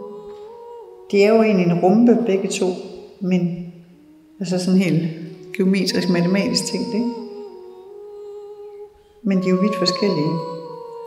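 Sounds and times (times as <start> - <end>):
steady tonal hum: 0.0 - 11.0.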